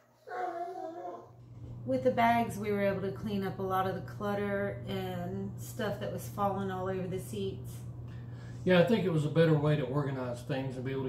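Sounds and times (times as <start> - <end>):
dog whining: 0.0 - 1.4.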